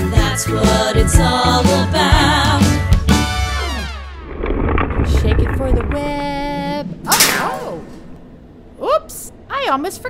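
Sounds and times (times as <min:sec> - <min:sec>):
low rumbling crash with crackle: 0:03.2 - 0:08.8.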